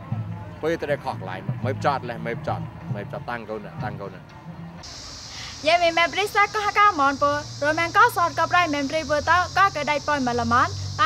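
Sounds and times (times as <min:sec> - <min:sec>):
woman speaking: 0:05.4 - 0:11.0.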